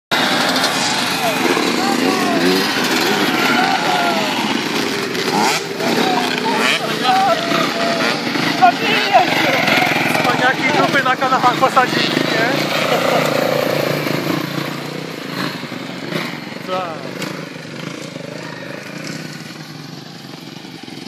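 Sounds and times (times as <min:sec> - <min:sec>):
motocross bike engines revving: 0:00.1 - 0:21.0
voices: 0:00.2 - 0:21.0.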